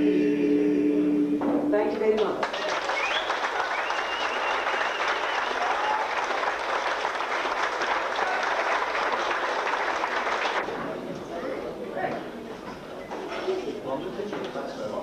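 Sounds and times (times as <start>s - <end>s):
audience applauding: 2.2s - 10.7s.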